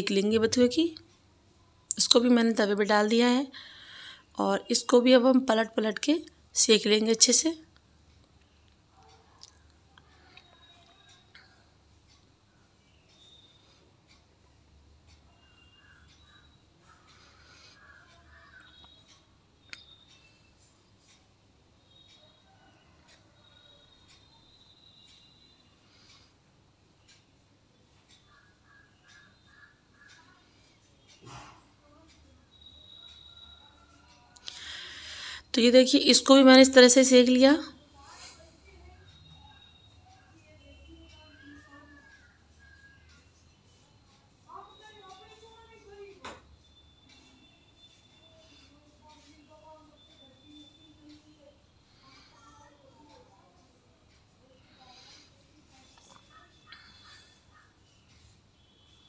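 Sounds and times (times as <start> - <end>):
faint high chirps: 8.4 - 26.3, 26.9 - 59.0
faint indistinct voices: 37.7 - 59.0.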